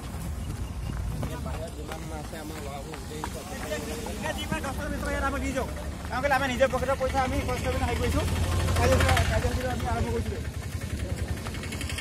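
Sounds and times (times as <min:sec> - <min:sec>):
footsteps on gravel: 0:00.0 - 0:05.3
men talking: 0:00.9 - 0:11.6.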